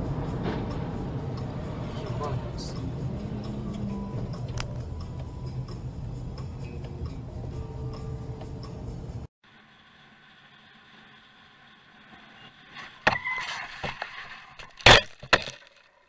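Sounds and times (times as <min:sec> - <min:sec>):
music: 0:00.0 - 0:09.3
scraping: 0:12.1 - 0:16.0.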